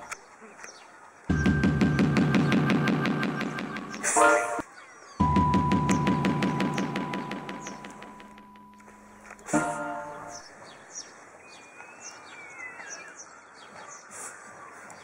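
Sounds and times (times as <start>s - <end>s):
small birds chirping: 0.0s - 15.0s
background music with steady beat: 1.3s - 4.6s, 5.2s - 10.3s.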